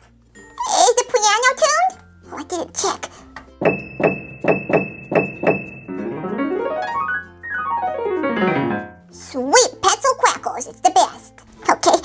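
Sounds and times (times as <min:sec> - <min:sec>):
piano fast runs: 0:03.6 - 0:09.0.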